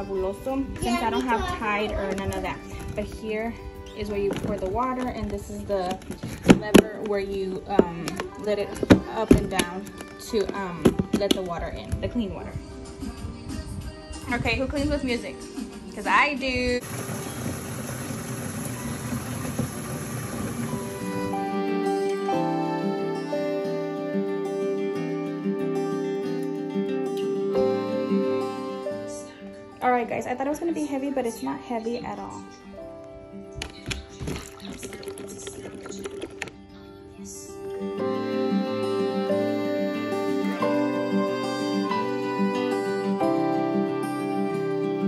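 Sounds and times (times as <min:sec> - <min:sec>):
soft guitar music: 0:00.0 - 0:16.8, 0:18.6 - 0:45.0
water pouring into plastic tank: 0:16.8 - 0:21.4, 0:33.9 - 0:36.6.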